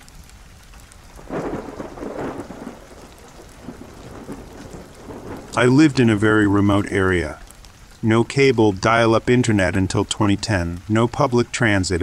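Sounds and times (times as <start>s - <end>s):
rain: 0.0s - 12.0s
thunder rumble: 1.1s - 9.9s.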